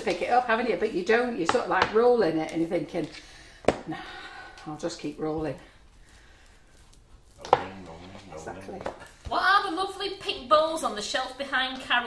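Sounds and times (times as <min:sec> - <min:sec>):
rolling pin rolling over dough: 0:00.0 - 0:03.8, 0:04.7 - 0:10.8.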